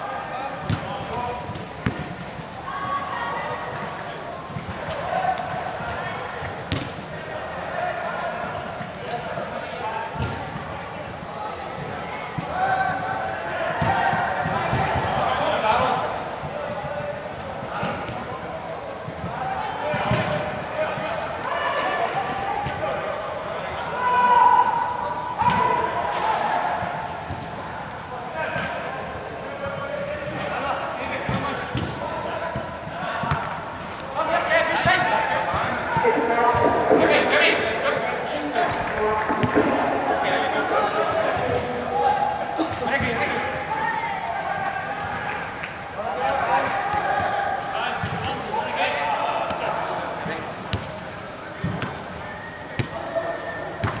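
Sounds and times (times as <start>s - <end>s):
players shouting: 0.0s - 51.4s
ball kicked and bouncing: 6.7s - 6.9s, 38.7s - 40.2s.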